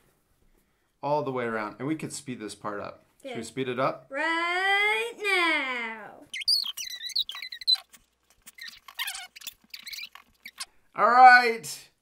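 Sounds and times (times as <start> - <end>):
sped-up squeaky voices: 6.2 - 10.8
marker scratching on paper: 6.3 - 10.7.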